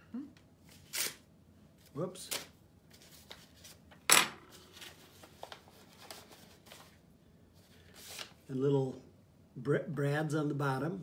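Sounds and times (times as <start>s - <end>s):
paper rustling: 1.8s - 7.0s, 7.6s - 8.5s
sharp paper crackle: 4.5s - 7.0s, 7.6s - 8.4s.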